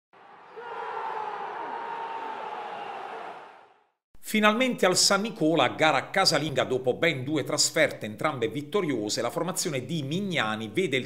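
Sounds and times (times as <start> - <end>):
faint crowd chanting: 0.2 - 3.8
stadium crowd noise: 0.2 - 3.8.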